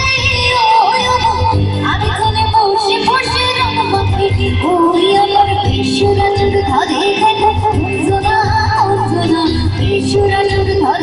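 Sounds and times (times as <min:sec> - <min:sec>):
band of keyboards and rhythm: 0:00.0 - 0:11.0
woman singing ornamented melody: 0:00.0 - 0:11.0.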